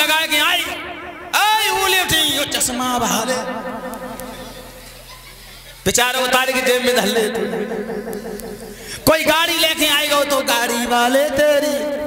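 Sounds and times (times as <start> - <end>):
man's amplified speech: 0.0 - 4.5, 5.8 - 12.0
electrical hum: 0.0 - 12.0.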